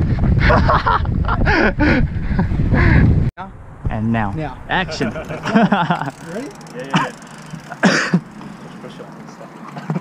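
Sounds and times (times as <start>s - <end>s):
man laughing breathily: 0.4s - 3.2s.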